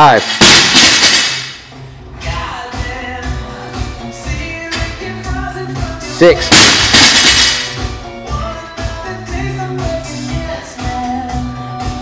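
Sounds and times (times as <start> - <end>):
barbell dropped on rubber floor: 0.3 - 1.6, 6.5 - 7.8
background music with a beat: 1.6 - 12.0.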